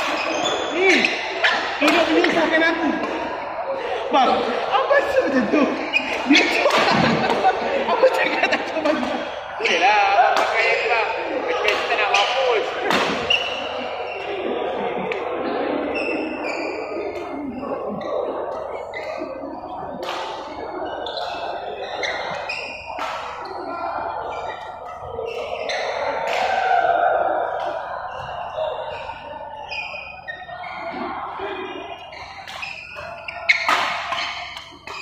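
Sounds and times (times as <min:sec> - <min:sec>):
voices echoing in hall: 0:00.0 - 0:35.0.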